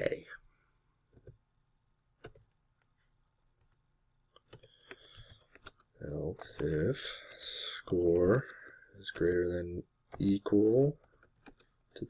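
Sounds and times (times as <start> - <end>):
computer keyboard typing: 2.2 - 2.5, 4.4 - 11.8.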